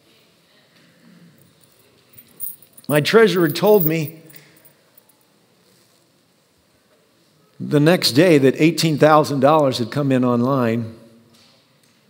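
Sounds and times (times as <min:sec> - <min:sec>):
coins jingling in a cloth sock: 0:01.6 - 0:05.1
man speaking: 0:02.9 - 0:04.4.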